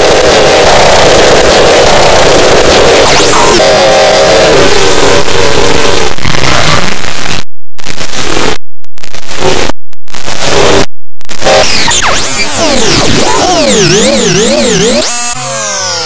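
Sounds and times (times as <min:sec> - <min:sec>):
harsh distorted noise: 0:00.0 - 0:16.0.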